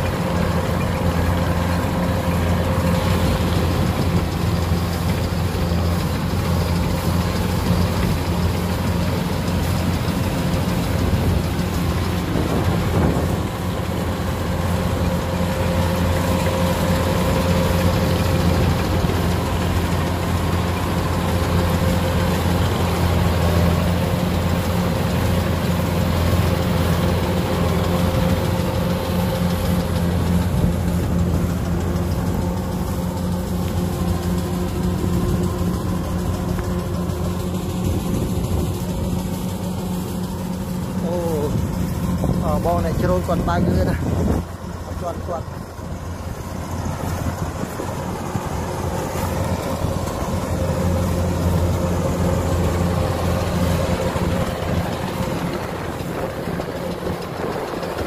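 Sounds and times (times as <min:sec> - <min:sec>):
cutting and threshing machinery: 0:00.0 - 0:58.0
diesel engine hum: 0:00.0 - 0:58.0.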